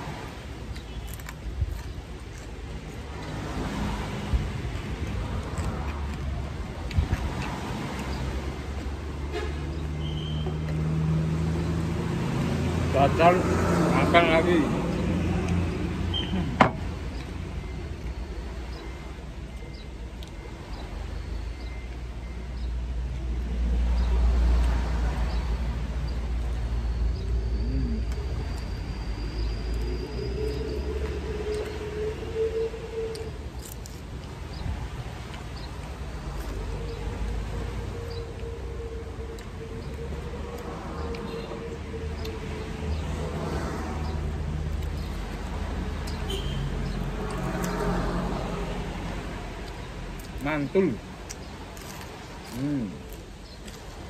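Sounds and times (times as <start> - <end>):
car passing on road: 2.8 - 18.7, 23.4 - 53.1
faint high chirps: 26.4 - 31.8.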